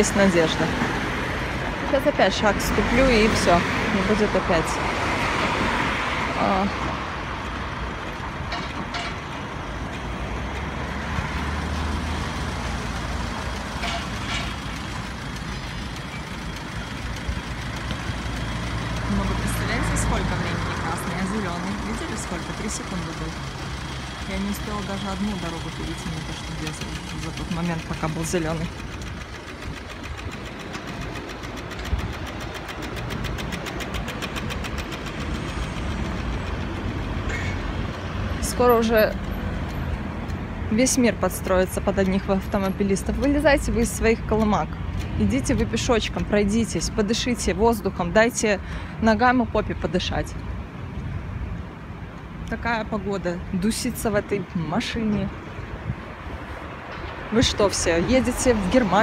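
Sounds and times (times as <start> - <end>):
road traffic passing: 0.0 - 59.0
low engine rumble: 6.5 - 49.9
crossing signal ticking rapidly: 12.0 - 48.4.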